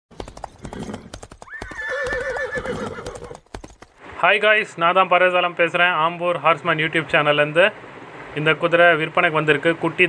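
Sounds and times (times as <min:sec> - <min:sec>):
horse hooves galloping: 0:00.1 - 0:04.2
horse whinnying: 0:00.6 - 0:03.5.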